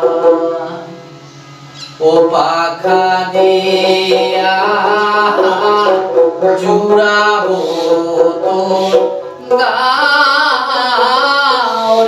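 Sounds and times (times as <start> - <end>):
plucked lute: 0.0 - 0.9, 2.3 - 12.0
man singing folk song: 0.0 - 1.0, 2.0 - 12.0.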